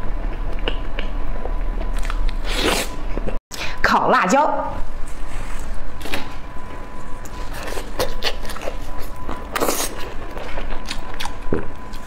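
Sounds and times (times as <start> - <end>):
biting and chewing food: 0.0 - 3.4, 5.6 - 12.0.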